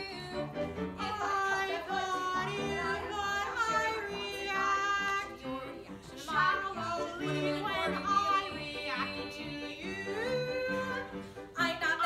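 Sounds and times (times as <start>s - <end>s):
piano accompaniment: 0.0s - 12.0s
woman singing: 0.0s - 12.0s.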